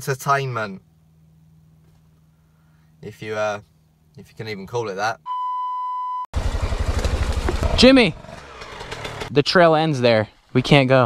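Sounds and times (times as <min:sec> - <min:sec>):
steady electronic beep: 0:05.2 - 0:06.3
dirt bike engine running: 0:06.4 - 0:11.0.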